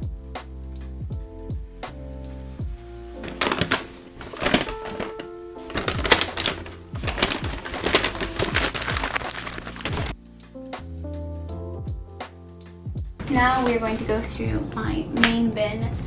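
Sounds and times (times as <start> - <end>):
lo-fi background music: 0.0 - 16.0
plastic and paper bags crinkling: 3.2 - 10.2, 13.2 - 14.1.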